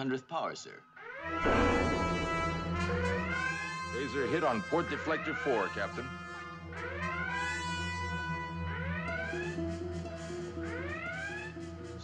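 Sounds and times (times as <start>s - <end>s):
electronic alarm klaxon whooping: 1.0s - 12.0s
orchestral music with brass: 1.2s - 12.0s.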